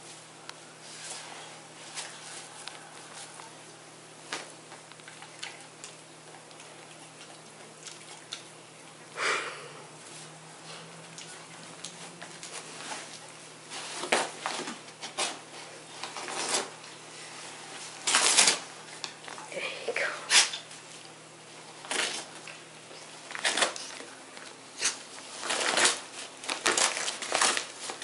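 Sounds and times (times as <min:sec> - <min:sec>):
dog tearing paper envelope: 0:11.6 - 0:16.9, 0:17.8 - 0:19.3, 0:21.6 - 0:28.0.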